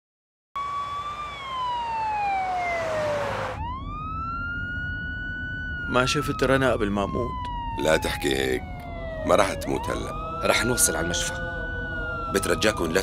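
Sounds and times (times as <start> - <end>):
ambulance siren wailing: 0.6 - 13.0
low rumble of vehicle on road: 0.6 - 13.0.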